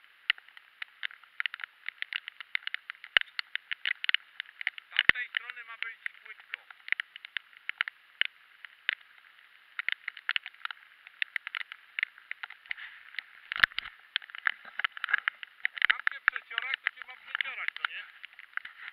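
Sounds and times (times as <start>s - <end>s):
rain tapping on camera housing: 0.0s - 18.9s.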